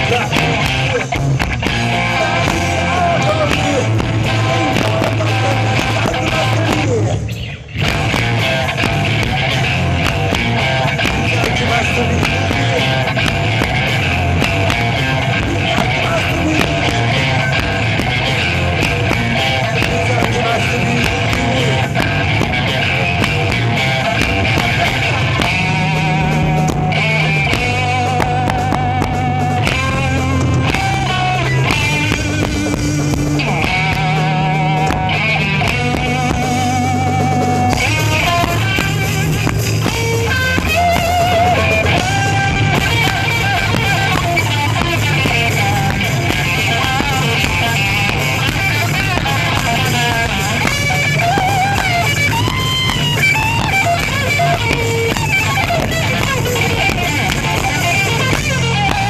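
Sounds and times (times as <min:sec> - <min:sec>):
live rock band playing: 0:00.0 - 0:59.0.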